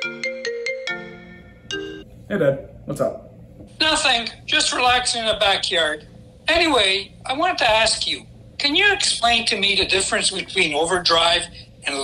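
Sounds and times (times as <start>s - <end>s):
marimba-like phone ringtone: 0.0s - 2.1s.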